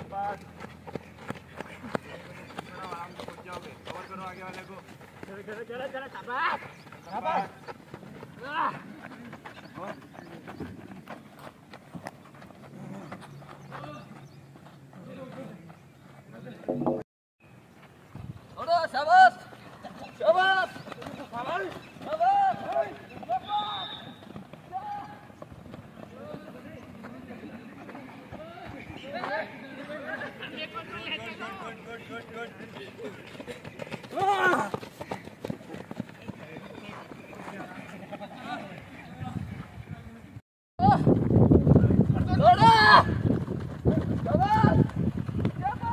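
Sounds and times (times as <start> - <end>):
footsteps running on dirt: 0.0 - 16.7, 17.7 - 39.8, 40.9 - 45.9
men shouting: 34.1 - 34.8, 42.3 - 43.2
man yelling: 42.3 - 43.2.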